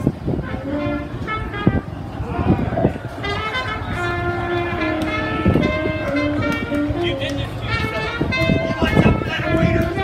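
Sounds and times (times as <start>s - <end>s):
crowd voices: 0.0s - 10.0s
horn-like held notes: 0.4s - 10.0s.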